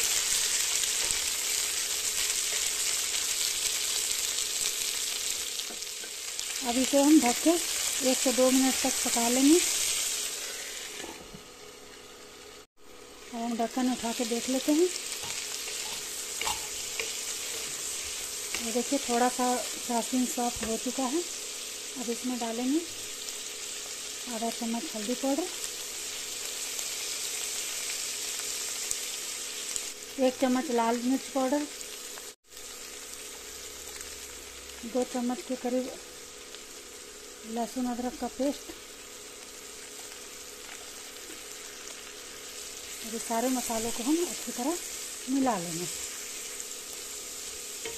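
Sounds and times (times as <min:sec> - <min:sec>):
beans frying in oil: 0:00.0 - 0:47.9
muffled sizzling under lid: 0:00.0 - 0:47.9.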